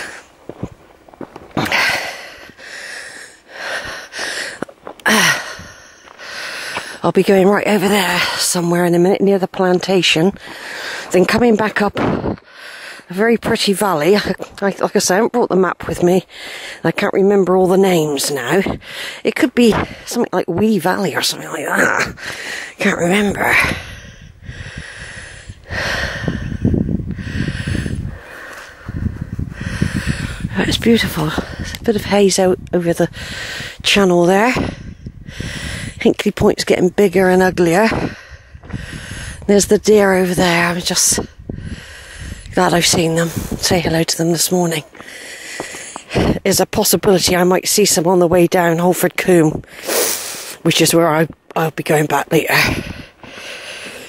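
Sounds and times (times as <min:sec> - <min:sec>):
heavy breathing: 0:00.0 - 0:00.4, 0:01.5 - 0:07.1, 0:10.3 - 0:11.2, 0:12.2 - 0:13.1, 0:16.3 - 0:16.8, 0:18.7 - 0:20.1, 0:22.0 - 0:31.8, 0:33.1 - 0:33.9, 0:34.6 - 0:36.0, 0:37.8 - 0:39.6, 0:40.9 - 0:43.7, 0:44.8 - 0:46.4, 0:52.5 - 0:54.0
footsteps on gravel: 0:00.0 - 0:02.8, 0:03.7 - 0:08.2, 0:42.5 - 0:47.4.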